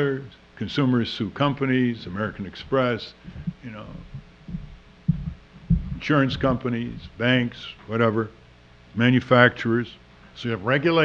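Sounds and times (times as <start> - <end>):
dull low thumps: 2.1 - 7.9.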